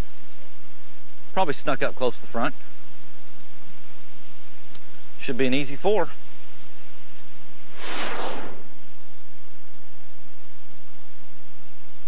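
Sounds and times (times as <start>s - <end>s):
soft rush of noise: 0.0s - 11.6s
faint steady hum: 0.0s - 12.0s.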